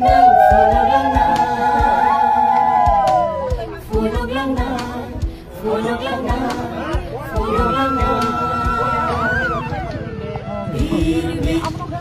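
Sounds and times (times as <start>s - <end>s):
steady low drum beat: 0.0s - 5.4s, 6.1s - 9.0s
group singing long sliding notes: 0.0s - 10.0s, 10.7s - 12.0s.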